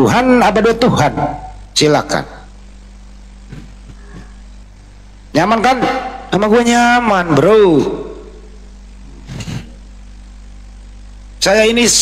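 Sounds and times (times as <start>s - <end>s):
electrical hum and hiss: 0.0s - 12.0s.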